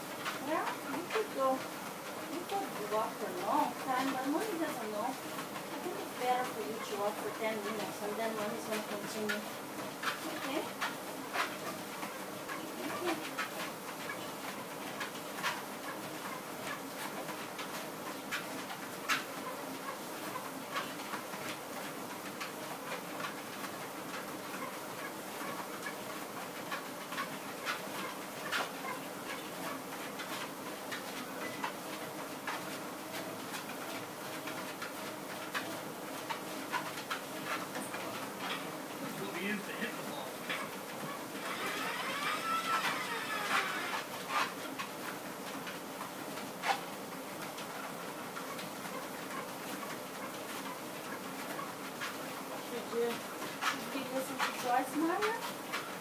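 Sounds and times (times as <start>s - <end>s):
footsteps clicking and tapping: 0.0s - 56.0s
treadmill motor and belt running: 0.0s - 56.0s.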